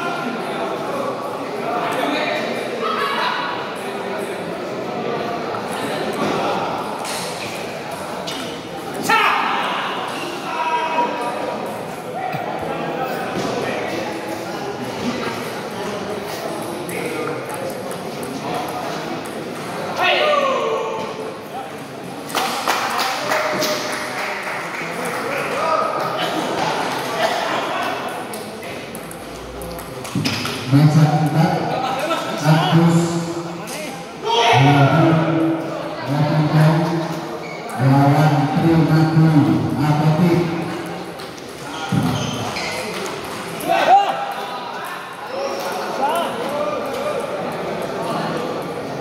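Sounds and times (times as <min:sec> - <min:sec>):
chatter in echoing hall: 0:00.0 - 0:49.0
people shouting: 0:09.0 - 0:11.1.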